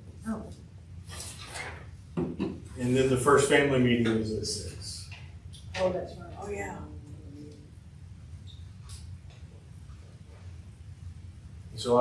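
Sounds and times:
man talking: 2.8 - 5.1, 11.8 - 12.0.

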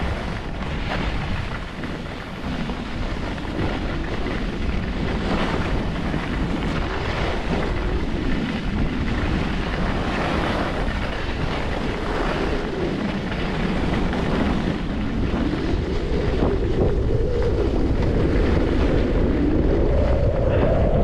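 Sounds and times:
skis sliding over snow: 0.0 - 21.0
wind rushing over microphone: 0.0 - 21.0.

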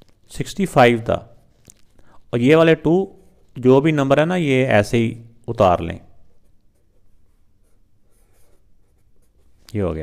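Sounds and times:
marker scratching on paper: 6.2 - 9.6.

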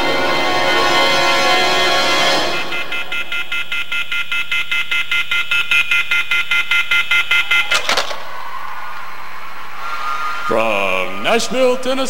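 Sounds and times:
rapid electronic beeping: 2.5 - 7.9.

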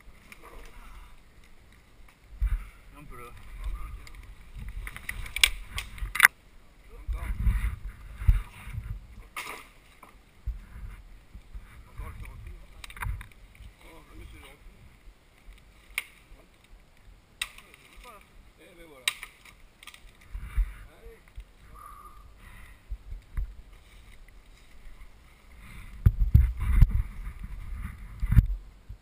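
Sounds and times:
branches knocking and cracking: 0.0 - 6.4, 7.1 - 21.7, 22.4 - 28.6
low rumbling wind noise: 0.0 - 17.4, 19.6 - 29.0.

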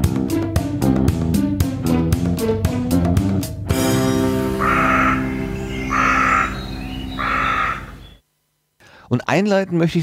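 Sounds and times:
guitar-led music jingle: 1.5 - 7.2
short raspy calls: 4.6 - 8.2.

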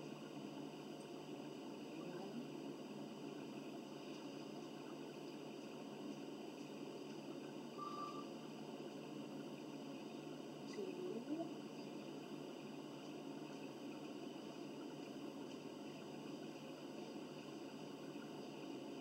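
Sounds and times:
high beep: 7.8 - 8.3.

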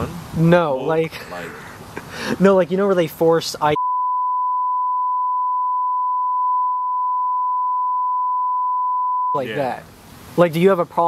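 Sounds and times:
high-pitched censor bleep: 3.8 - 9.4.

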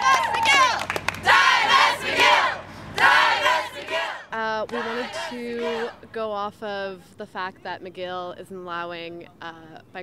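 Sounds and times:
crowd cheering and shouting: 0.0 - 4.2.

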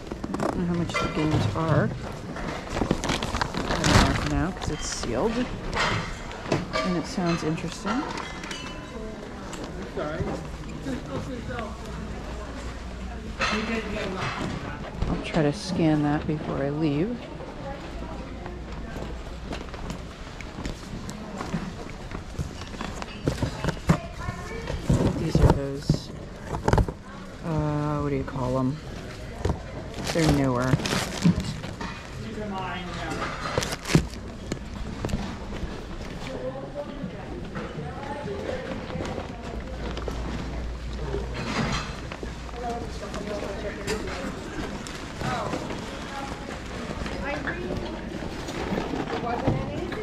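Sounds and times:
knocks and rustles of items handled: 0.0 - 17.2, 17.8 - 50.0
indistinct chatter of shoppers: 0.0 - 50.0.

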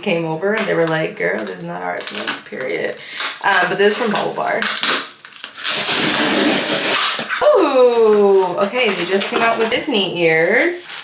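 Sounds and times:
tape ripping off cardboard box: 3.1 - 7.6.

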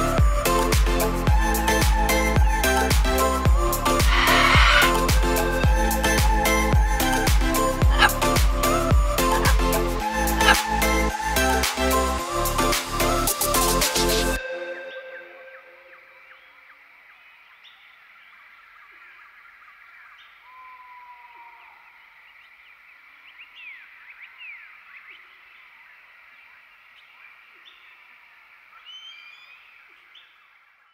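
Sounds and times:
animal chirps and gliding calls: 3.8 - 11.0.

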